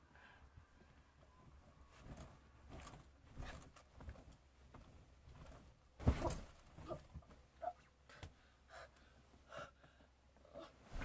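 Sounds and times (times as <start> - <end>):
girl gasping and breathing: 8.1 - 10.9.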